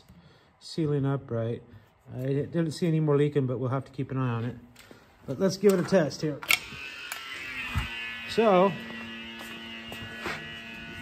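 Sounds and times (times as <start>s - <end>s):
pump motor buzzing: 6.5s - 11.0s.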